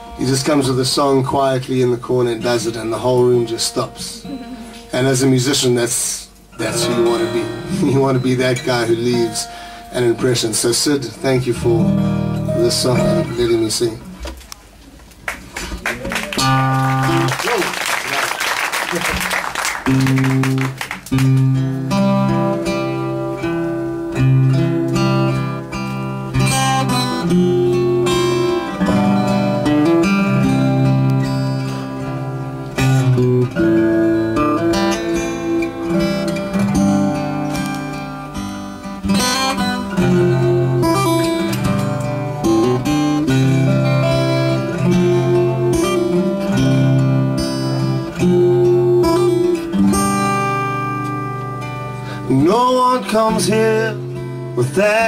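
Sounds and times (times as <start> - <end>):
acoustic guitars playing: 0.0 - 55.0.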